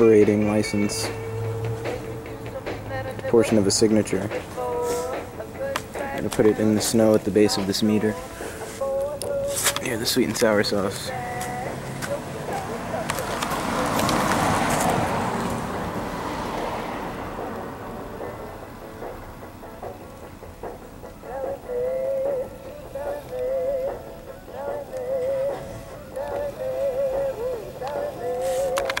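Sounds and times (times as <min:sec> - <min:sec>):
person singing wavering tune: 0:00.0 - 0:03.6, 0:10.8 - 0:13.4, 0:21.2 - 0:29.0
vehicle passing: 0:00.0 - 0:06.8, 0:10.6 - 0:21.0.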